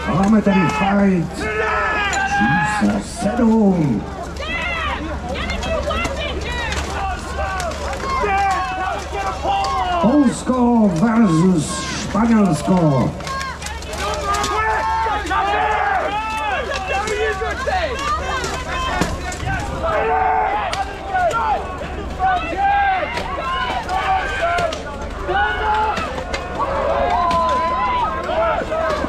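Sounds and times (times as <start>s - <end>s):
crowd shouting and yelling: 0.0s - 29.0s.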